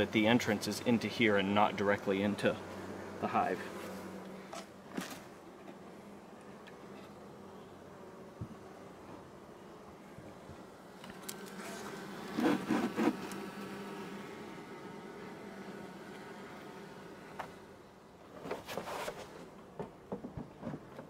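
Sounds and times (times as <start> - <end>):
honeybees buzzing: 0.0 - 18.3.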